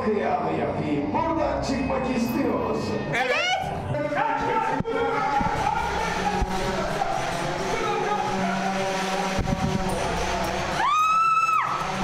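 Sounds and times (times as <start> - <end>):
background music: 0.0 - 12.0
noisy din: 1.5 - 12.0
high-pitched scream: 10.6 - 12.0.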